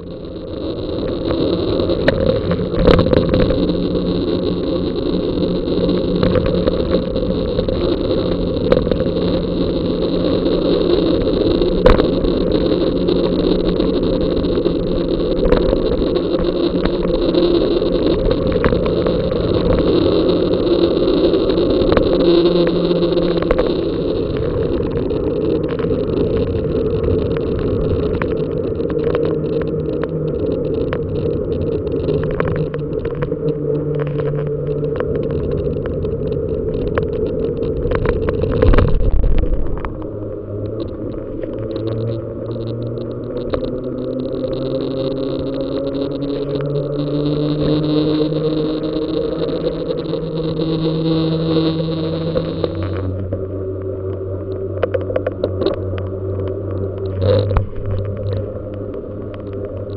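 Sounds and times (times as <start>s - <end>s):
road rumble: 0.0s - 59.9s
wind buffeting microphone: 0.0s - 59.9s.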